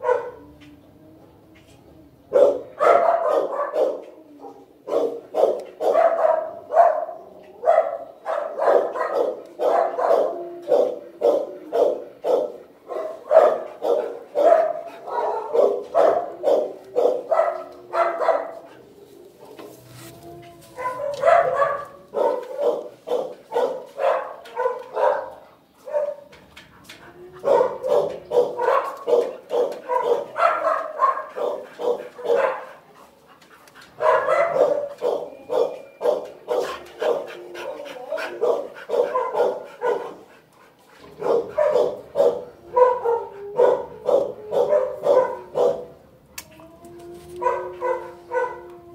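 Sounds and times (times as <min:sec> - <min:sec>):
dogs barking: 0:00.0 - 0:00.5, 0:02.3 - 0:19.7, 0:20.6 - 0:26.4, 0:27.2 - 0:46.1, 0:47.3 - 0:48.9.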